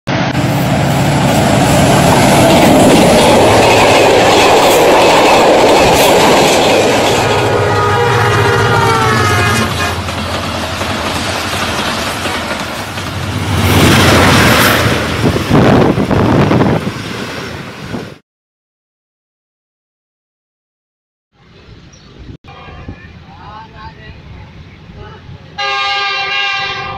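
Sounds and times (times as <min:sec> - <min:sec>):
train coaches clattering over rails: 0:01.1 - 0:08.5, 0:09.4 - 0:15.6
locomotive horn: 0:07.3 - 0:10.1, 0:25.0 - 0:26.9.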